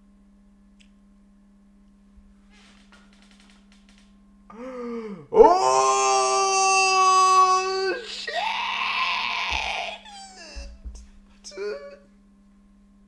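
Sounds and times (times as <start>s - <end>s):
long held yell: 5.3s - 10.8s
rough scream: 5.4s - 10.6s.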